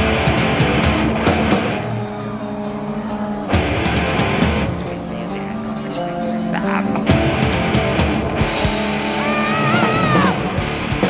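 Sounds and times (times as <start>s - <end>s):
distorted electric guitar and bass: 0.0s - 11.0s
drum hits: 6.9s - 11.0s.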